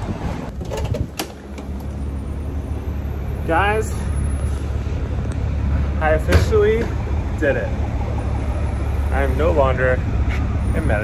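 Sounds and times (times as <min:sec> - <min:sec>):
low rumble of traffic: 0:00.0 - 0:11.0.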